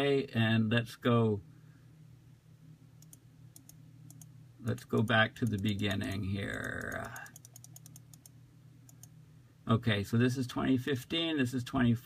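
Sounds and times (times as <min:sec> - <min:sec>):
faint low hum: 0:00.0 - 0:12.0
computer keyboard clicks: 0:03.0 - 0:08.3.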